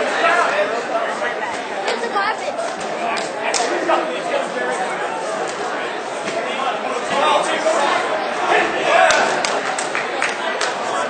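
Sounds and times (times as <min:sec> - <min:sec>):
crowd talking and calling out: 0:00.0 - 0:11.0.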